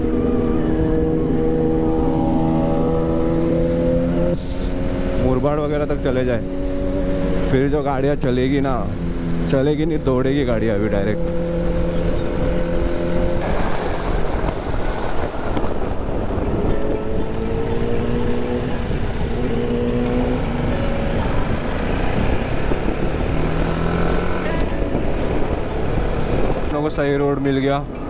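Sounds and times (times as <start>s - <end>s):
wind rush on microphone: 11.2s - 28.0s
motorcycle engine running: 16.0s - 26.8s.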